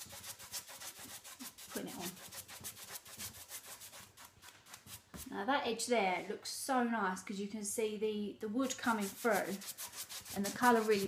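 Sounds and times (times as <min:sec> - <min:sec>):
paintbrush bristles scratching on wood: 0:00.0 - 0:05.3, 0:08.6 - 0:11.0.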